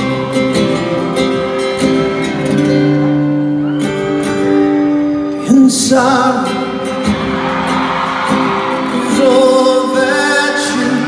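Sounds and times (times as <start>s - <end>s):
male vocal group singing: 9.0s - 11.0s.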